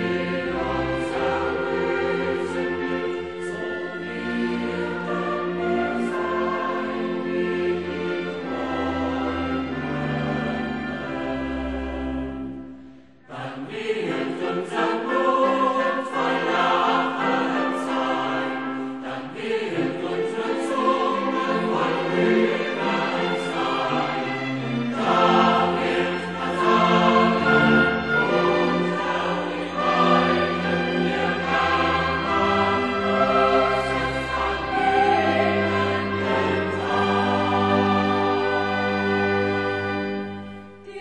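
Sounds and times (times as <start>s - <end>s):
choir singing with instruments: 0.0s - 41.0s.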